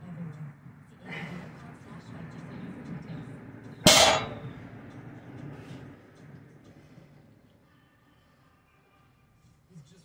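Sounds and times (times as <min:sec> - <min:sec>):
barbell plates clanking on mat: 0:03.9 - 0:04.5.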